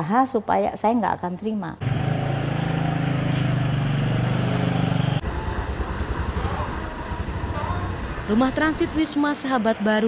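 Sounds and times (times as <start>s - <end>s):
motor vehicle engine drone: 1.8s - 10.0s.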